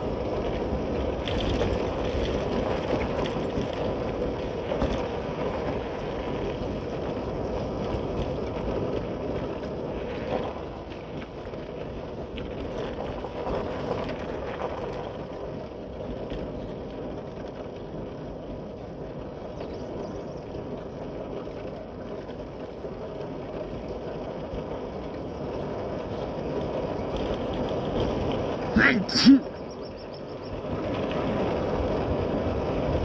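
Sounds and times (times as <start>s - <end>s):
wind and road noise: 0.0s - 33.0s.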